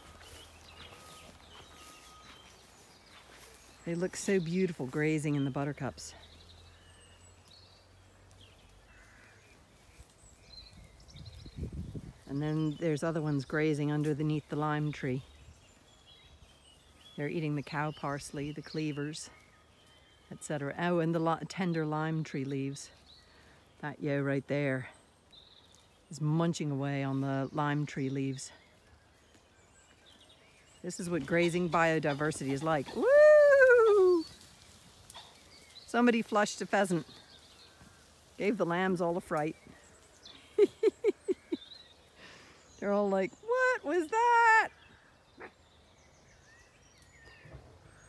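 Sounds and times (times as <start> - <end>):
high-pitched bird calls: 0.0 - 3.8
distant bird chirps: 0.0 - 48.0.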